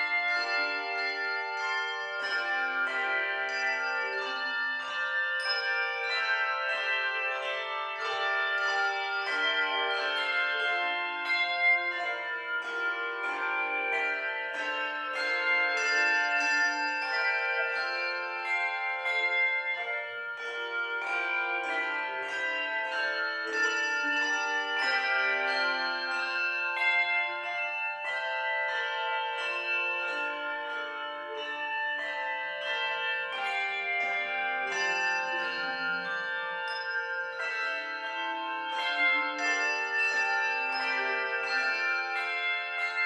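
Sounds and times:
handbell choir playing: 0:00.0 - 0:43.0.

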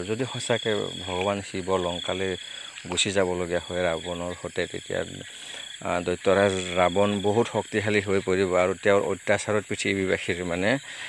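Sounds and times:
insects chirring: 0:00.0 - 0:11.0
man talking: 0:00.0 - 0:11.0.

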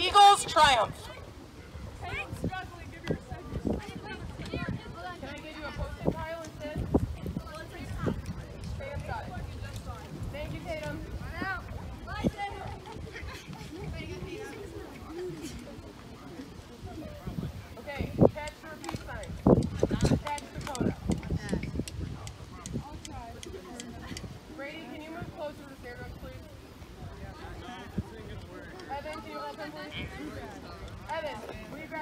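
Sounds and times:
people talking indistinctly: 0:00.0 - 0:32.0
wind rumbling on microphone: 0:00.0 - 0:32.0.

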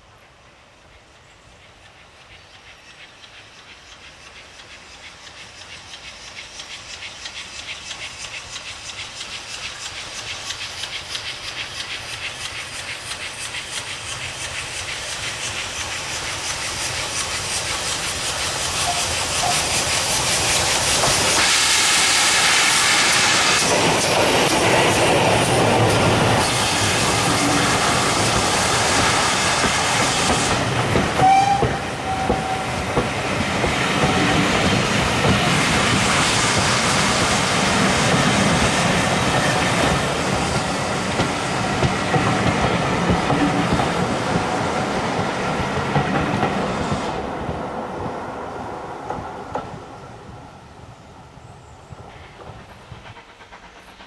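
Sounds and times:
steam locomotive passing: 0:00.0 - 0:54.0
steam hissing: 0:00.8 - 0:54.0
train wheel squeal: 0:01.0 - 0:45.4, 0:51.4 - 0:54.0
train wheels clattering on rails: 0:01.5 - 0:50.4, 0:51.9 - 0:54.0.

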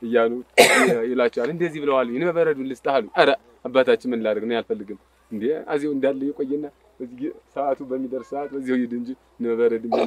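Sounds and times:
man speaking: 0:00.0 - 0:10.0
throat clearing or cough: 0:00.6 - 0:01.1.

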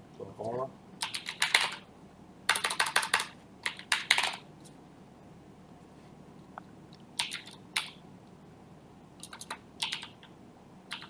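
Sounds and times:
computer keyboard typing: 0:01.0 - 0:01.9, 0:02.5 - 0:04.5, 0:07.2 - 0:08.0, 0:09.2 - 0:10.3.

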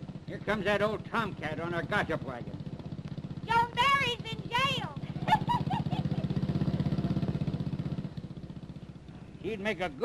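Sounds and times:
small motorbike engine passing: 0:00.0 - 0:10.0.

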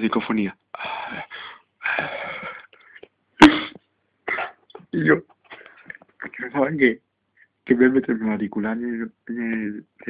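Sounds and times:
sharp cough: 0:03.4 - 0:04.6.

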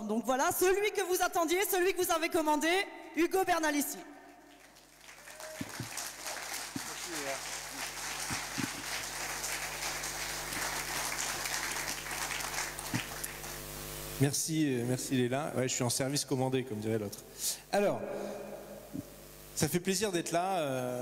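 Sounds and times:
audience applauding: 0:04.5 - 0:14.0.

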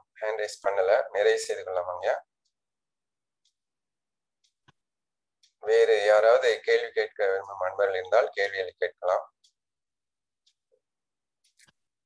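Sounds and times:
person speaking: 0:00.0 - 0:02.4, 0:05.5 - 0:09.5.

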